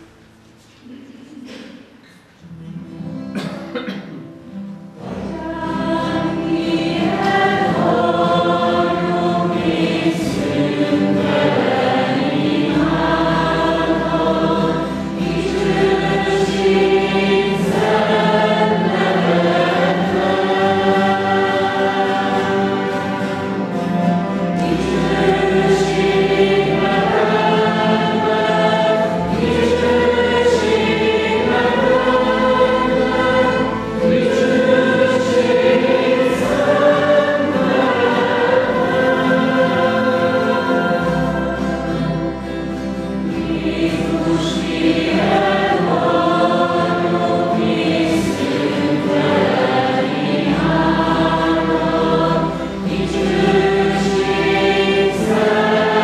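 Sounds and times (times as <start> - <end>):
strummed acoustic guitars: 1.5 - 56.0
group singing a hymn: 3.4 - 56.0
cello: 5.0 - 56.0.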